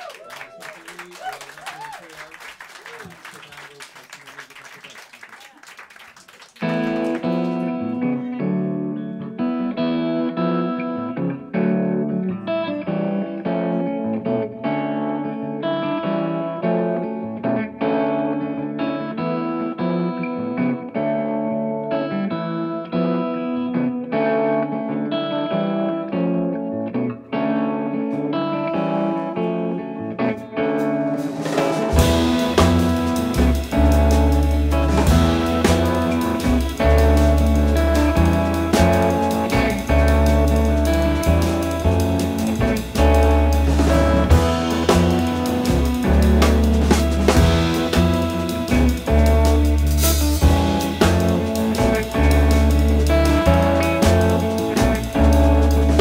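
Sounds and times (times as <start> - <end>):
jazz electric guitar: 6.6 - 56.0
drums: 30.6 - 56.0.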